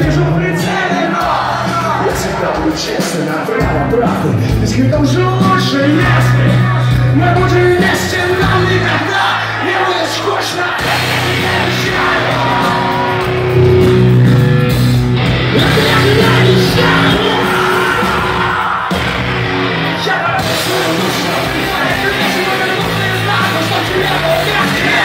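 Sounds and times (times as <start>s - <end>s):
voices singing and yelling: 0.0s - 13.9s, 15.4s - 25.0s
punk rock band playing live: 0.0s - 25.0s.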